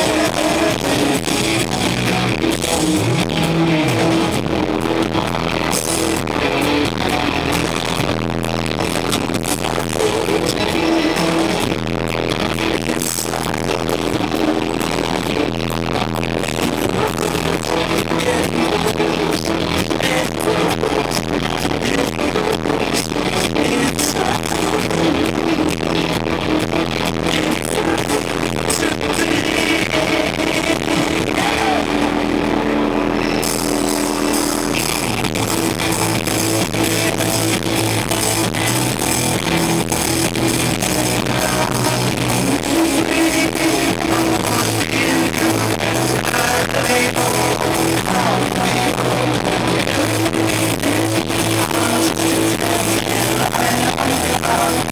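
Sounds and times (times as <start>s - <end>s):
distorted live rock band: 0.0s - 54.9s.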